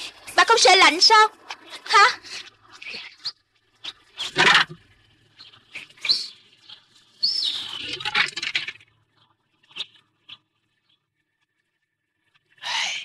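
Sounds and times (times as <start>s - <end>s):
birds chirping: 2.8s - 8.6s.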